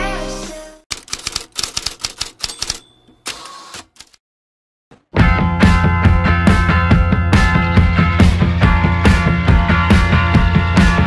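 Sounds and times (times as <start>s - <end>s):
background music: 0.0s - 0.8s
typewriter key clacks: 0.9s - 2.8s
typewriter bell ring: 1.2s - 3.3s.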